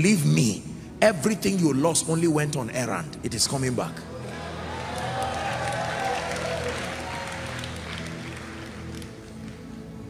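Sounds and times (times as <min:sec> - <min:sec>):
soft background music: 0:00.0 - 0:10.0
congregation applauding and cheering: 0:04.1 - 0:10.0.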